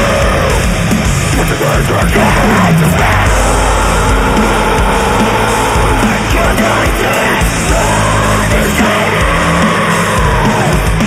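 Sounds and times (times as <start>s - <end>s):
distorted metal riff: 0.0s - 11.0s.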